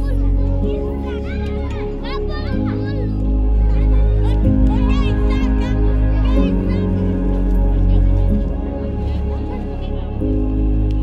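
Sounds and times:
children calling and shouting: 0.0 - 11.0
music of low held chords: 0.0 - 11.0.

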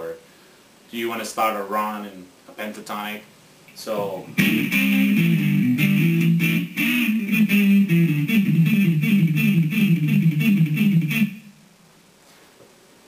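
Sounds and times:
clean electric guitar lick: 4.0 - 11.6.

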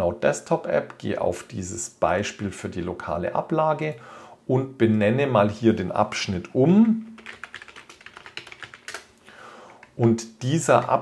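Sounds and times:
typing on computer keyboard: 6.8 - 9.1, 9.7 - 10.2.

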